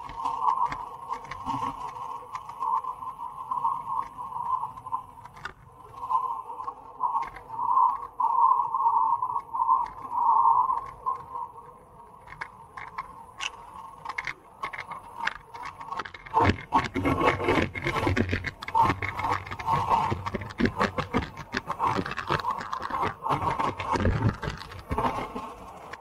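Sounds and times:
light clicks and rattles: 0:00.0 - 0:08.1, 0:10.7 - 0:26.0.

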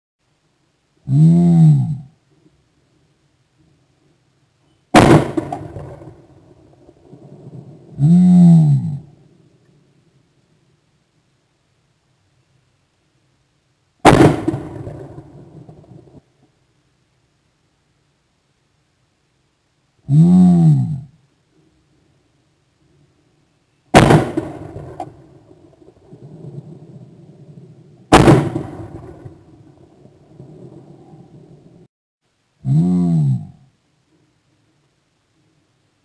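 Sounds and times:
low steady background noise: 0:00.2 - 0:36.0
clay target breaking: 0:05.0 - 0:06.1
shotgun shot: 0:05.0 - 0:06.3, 0:14.0 - 0:16.0, 0:23.9 - 0:25.2, 0:28.1 - 0:29.5.

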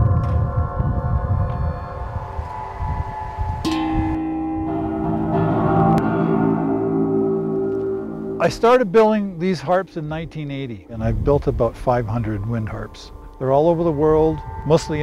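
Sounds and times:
wind rumbling on microphone: 0:00.0 - 0:05.3, 0:07.7 - 0:15.0
wind harp strings ringing: 0:01.2 - 0:15.0.

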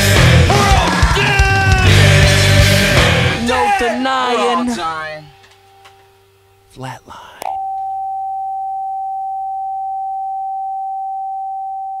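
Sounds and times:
heart monitor flatline beep: 0:07.6 - 0:12.0.

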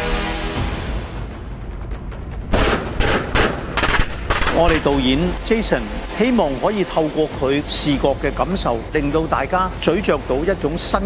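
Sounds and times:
loud sharp gunshots: 0:02.5 - 0:05.0.

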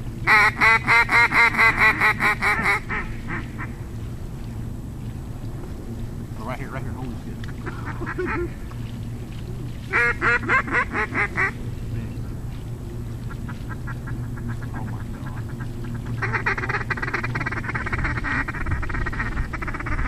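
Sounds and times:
duck quacking: 0:00.3 - 0:03.7, 0:07.5 - 0:08.6, 0:09.9 - 0:11.6, 0:13.3 - 0:20.0.

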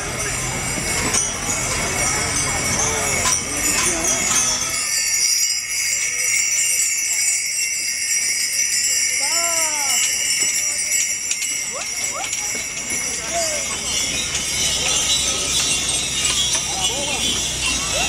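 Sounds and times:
crowd voices hubbub: 0:00.0 - 0:18.0
harness bells jingling: 0:00.0 - 0:18.0.

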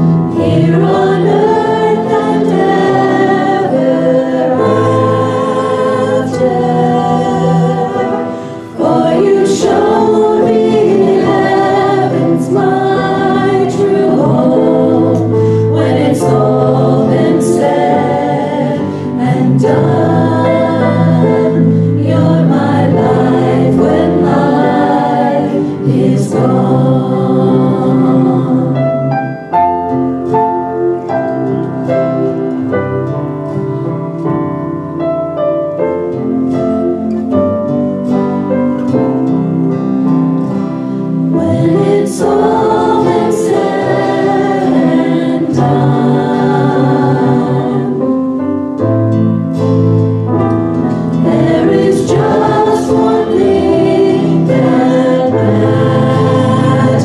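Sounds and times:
acoustic guitar: 0:00.0 - 0:57.0
woman singing worship song: 0:00.4 - 0:29.2, 0:41.4 - 0:48.1, 0:51.2 - 0:57.0.

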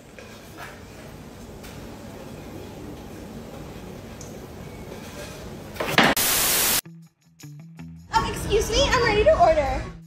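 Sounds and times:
static hiss burst: 0:05.8 - 0:06.8.

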